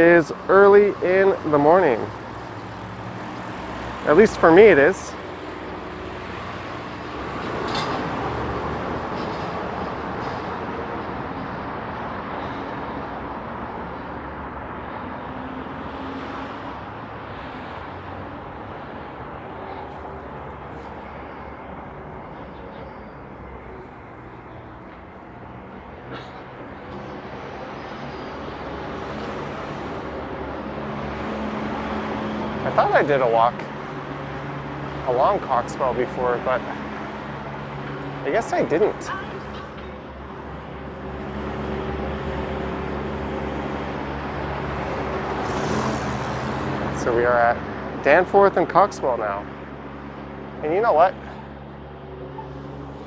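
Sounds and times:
traffic passing: 0.0s - 53.0s.

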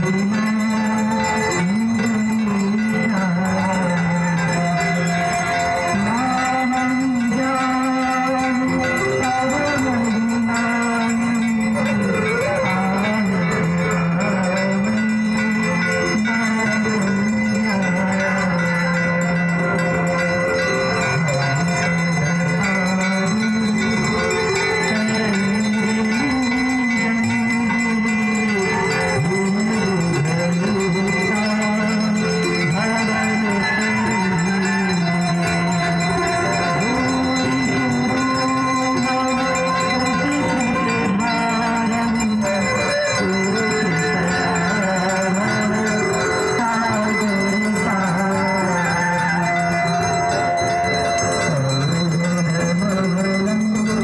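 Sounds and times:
bells ringing: 0.0s - 54.0s
slow low sung melody: 0.0s - 54.0s.

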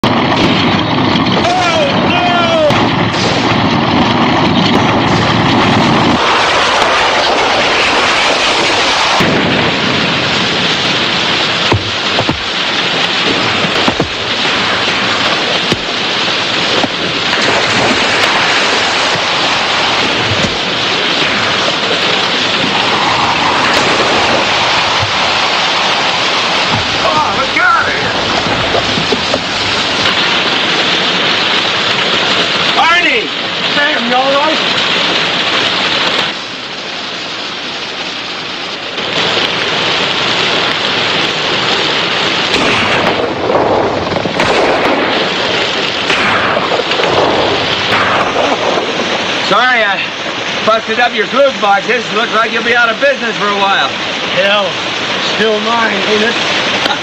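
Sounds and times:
loud rushing din: 0.0s - 57.0s
people shouting: 1.4s - 2.8s, 26.9s - 28.2s
knocks and thuds: 11.4s - 22.8s, 26.6s - 27.3s, 28.2s - 30.7s.

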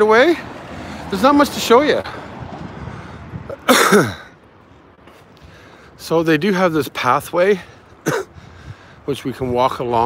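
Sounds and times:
man coughing: 3.5s - 4.4s, 8.0s - 8.4s.

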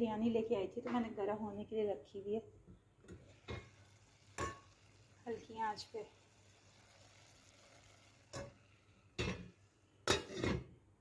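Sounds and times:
faint steady hiss: 0.0s - 11.0s
lid clinking on metal pot: 9.2s - 10.7s.

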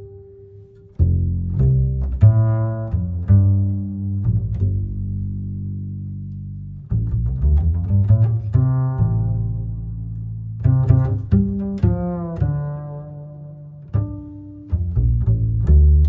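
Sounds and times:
low sustained bass notes: 0.0s - 16.0s.

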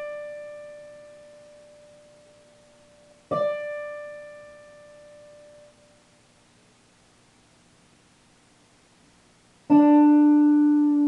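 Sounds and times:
electric guitar note ringing: 0.0s - 6.0s, 9.7s - 11.0s.

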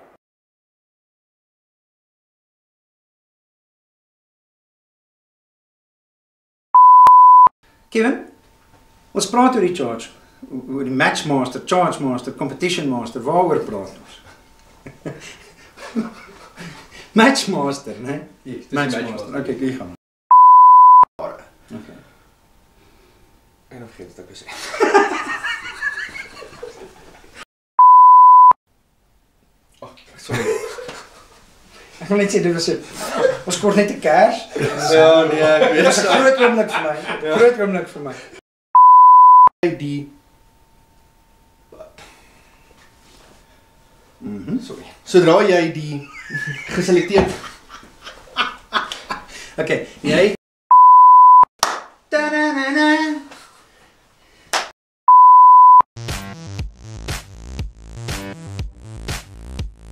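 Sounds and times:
electronic test-tone beep: 6.8s - 7.5s, 20.3s - 21.1s, 27.8s - 28.6s, 38.8s - 39.5s, 50.7s - 51.5s, 55.1s - 55.8s.

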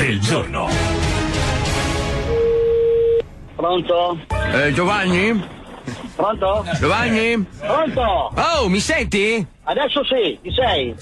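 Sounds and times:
radio jingle music: 0.0s - 11.0s.

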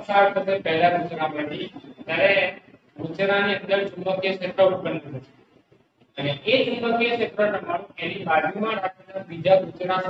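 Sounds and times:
man speaking: 0.0s - 5.4s, 6.1s - 10.0s.

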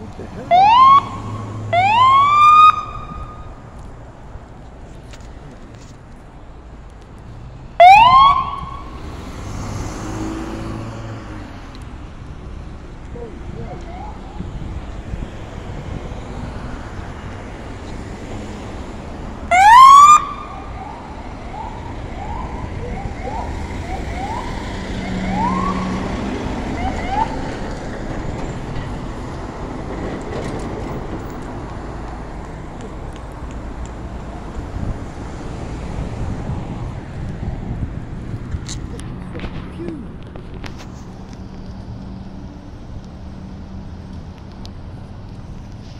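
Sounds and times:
traffic noise: 0.0s - 45.9s
police siren whoops: 0.5s - 3.4s, 7.8s - 8.9s, 19.5s - 26.1s, 26.7s - 27.4s.

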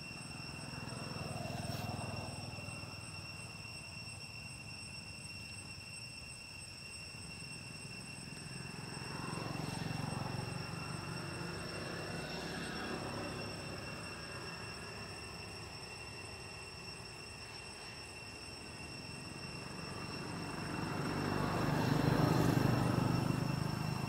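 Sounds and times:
steady high whine: 0.0s - 24.0s.

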